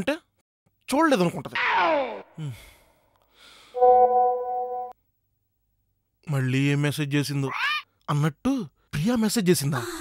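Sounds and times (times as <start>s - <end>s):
man sighing: 2.3s - 3.7s
steady electronic tone: 3.8s - 5.0s.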